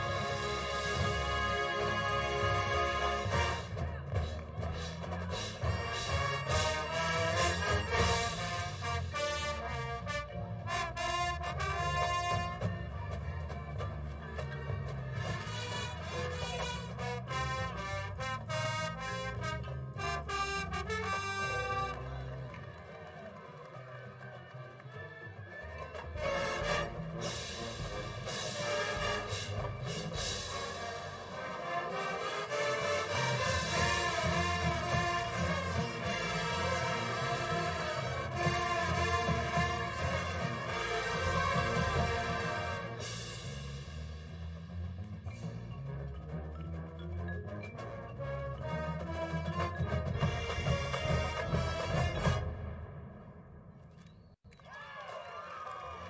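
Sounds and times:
marching band playing: 0.0 - 53.9.

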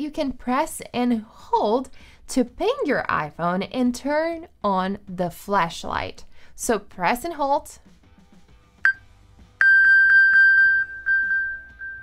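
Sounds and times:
phone pinging alert tone: 9.6 - 12.0.

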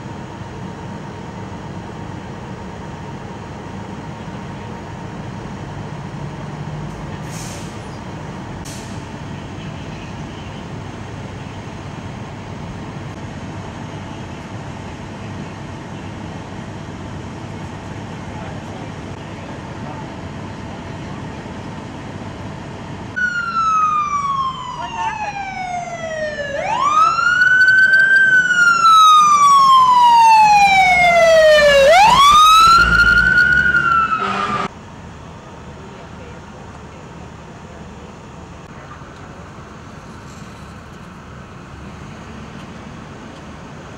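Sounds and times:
emergency vehicle siren wailing: 23.1 - 34.7.

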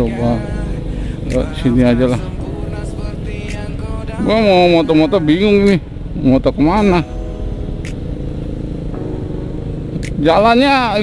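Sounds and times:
low road rumble: 0.0 - 11.0
motorcycle engine running steadily: 0.0 - 11.0.

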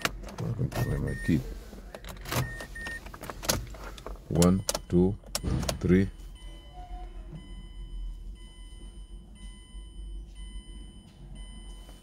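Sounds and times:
car warning chime: 0.0 - 1.4, 4.3 - 12.0.

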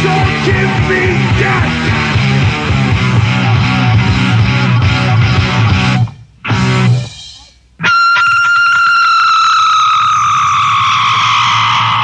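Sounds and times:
distorted electric guitar note: 0.0 - 9.0.

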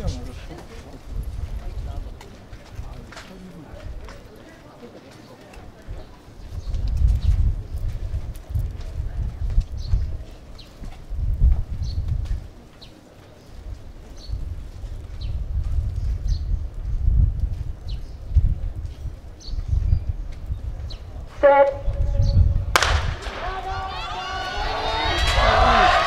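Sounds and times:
wind buffeting microphone: 0.0 - 4.5, 5.5 - 26.0.

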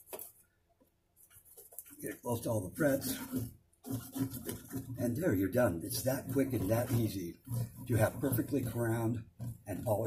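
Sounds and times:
rag rubbing guitar fretboard: 2.2 - 10.0.

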